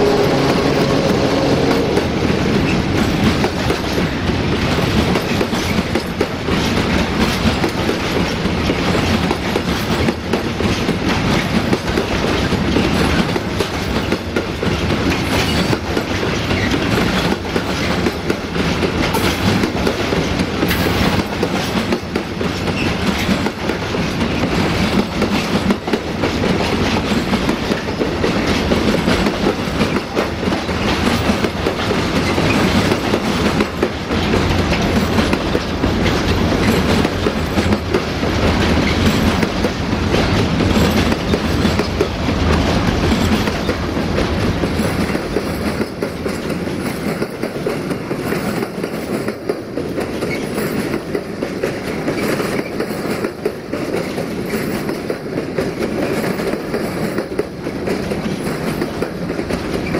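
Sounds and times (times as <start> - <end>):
train wheels clacking over rail joints: 0.0 - 59.9.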